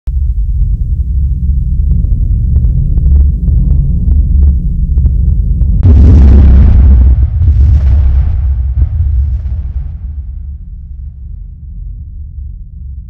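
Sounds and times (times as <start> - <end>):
deep low drone: 0.1 - 13.0
heavy boom with hissing crash: 5.8 - 11.3.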